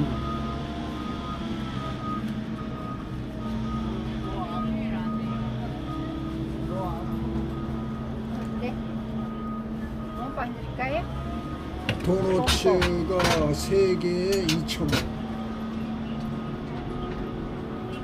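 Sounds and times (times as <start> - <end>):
vehicle engine running: 0.0 - 18.0
faint voices of passers-by: 1.3 - 18.0.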